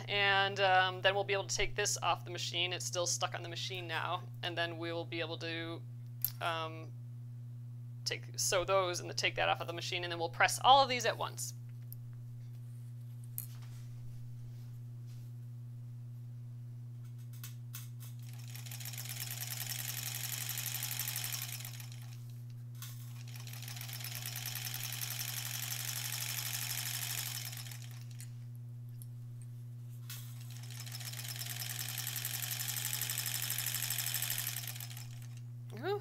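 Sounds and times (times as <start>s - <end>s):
sewing machine stitching: 18.2s - 22.2s, 22.8s - 28.3s, 30.1s - 35.4s.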